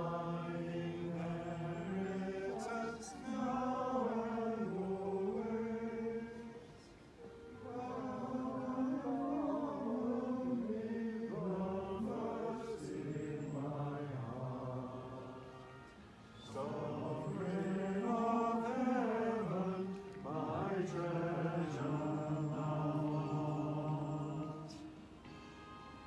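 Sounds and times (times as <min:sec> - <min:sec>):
group singing a hymn: 0:00.0 - 0:25.3.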